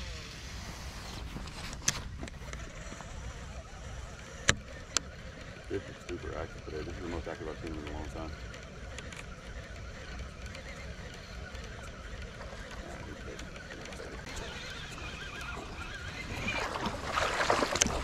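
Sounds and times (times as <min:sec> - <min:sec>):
faint clicks: 0:01.7 - 0:16.2
feet wading through shallow water: 0:12.0 - 0:18.0.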